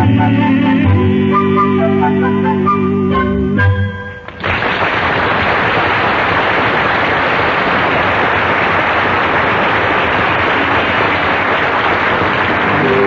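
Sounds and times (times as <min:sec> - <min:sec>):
audience applauding: 0:04.3 - 0:13.0.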